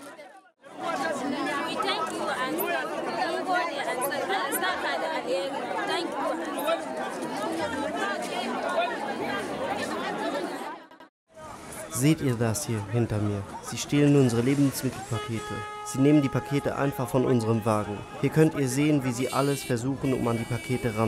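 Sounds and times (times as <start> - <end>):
crowd chattering: 0.0 - 21.0.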